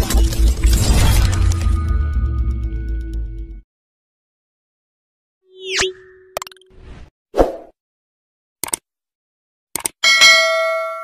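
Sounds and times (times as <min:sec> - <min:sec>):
quick double clicks: 0:08.6 - 0:08.8, 0:09.7 - 0:10.0
bright bell ding: 0:10.0 - 0:11.0.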